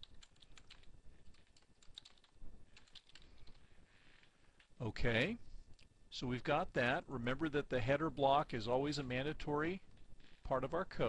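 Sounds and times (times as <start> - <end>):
keyboard typing clicks: 0.0 - 3.6.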